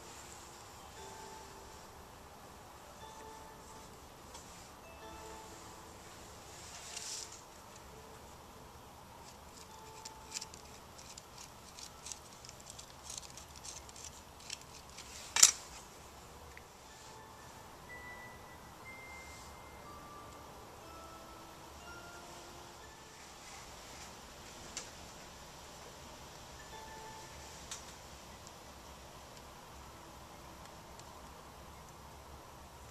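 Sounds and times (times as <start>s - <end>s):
faint music: 0.0s - 32.9s.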